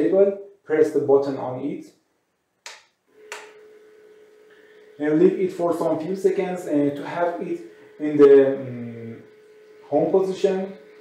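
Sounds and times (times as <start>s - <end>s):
turntable motor whine: 3.1s - 11.0s.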